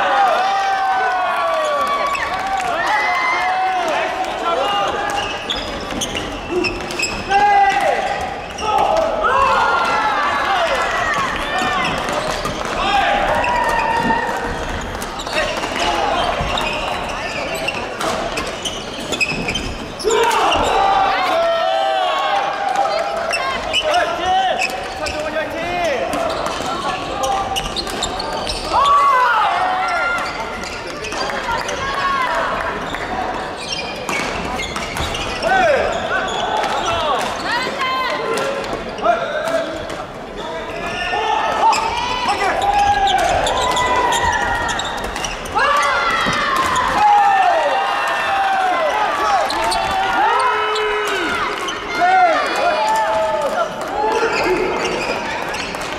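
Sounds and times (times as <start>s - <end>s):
voices echoing in hall: 0.0s - 55.9s
shoes squeaking on court: 5.1s - 7.3s, 11.2s - 20.8s, 22.9s - 29.0s, 29.9s - 31.9s, 32.8s - 37.7s, 41.6s - 45.6s, 54.1s - 55.9s.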